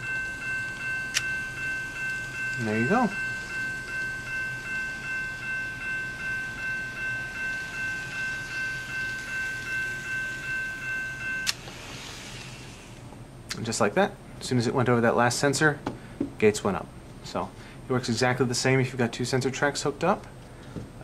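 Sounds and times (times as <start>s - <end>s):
electronic crossing bell dinging: 0.0s - 11.6s.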